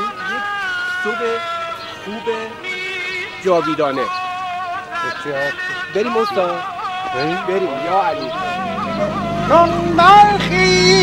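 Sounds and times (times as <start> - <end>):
person singing sliding notes: 6.6 - 11.0.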